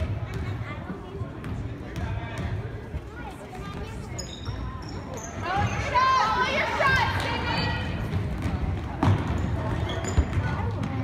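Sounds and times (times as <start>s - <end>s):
sneaker squeaks on hardwood: 3.8s - 6.0s, 9.0s - 10.7s
basketball bouncing: 7.6s - 11.0s.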